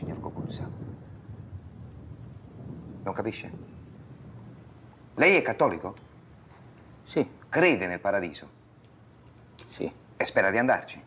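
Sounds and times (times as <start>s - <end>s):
low steady background rumble: 0.0s - 11.0s.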